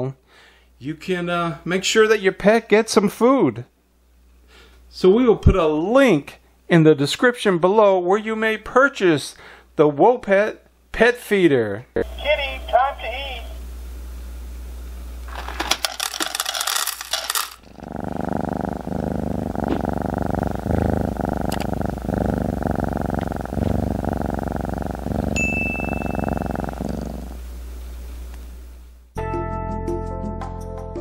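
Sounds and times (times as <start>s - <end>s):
dry kibble clattering into metal bowl: 15.3s - 17.7s
cat purring: 16.0s - 27.8s.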